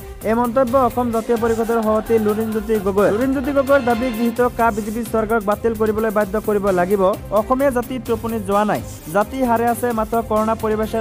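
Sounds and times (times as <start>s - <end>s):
background music: 0.0s - 11.0s
person speaking: 0.9s - 5.4s.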